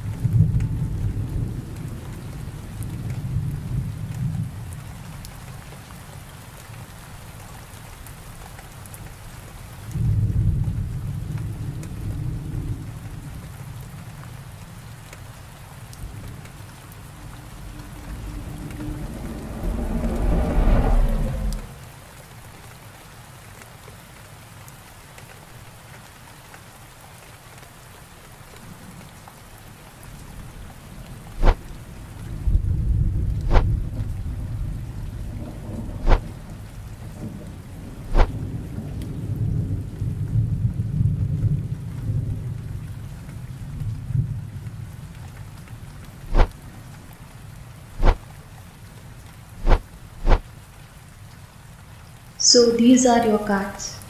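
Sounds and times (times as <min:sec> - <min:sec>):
thunder rumbling: 0:00.0 - 0:05.4, 0:09.9 - 0:22.6, 0:30.3 - 0:48.7, 0:49.4 - 0:50.8
steady rain: 0:00.0 - 0:54.0.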